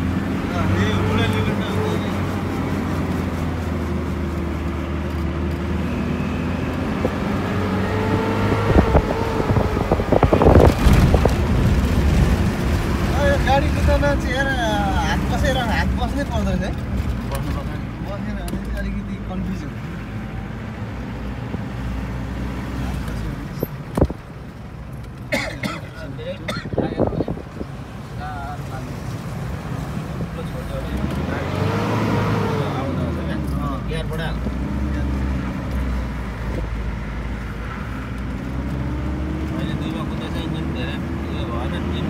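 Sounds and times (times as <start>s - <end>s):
car engine and road noise: 0.0s - 42.0s.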